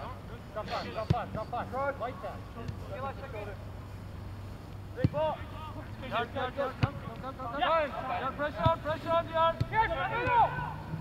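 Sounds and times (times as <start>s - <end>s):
steady low hum: 0.0s - 11.0s
ball being kicked: 5.0s - 5.3s
players shouting: 7.5s - 11.0s.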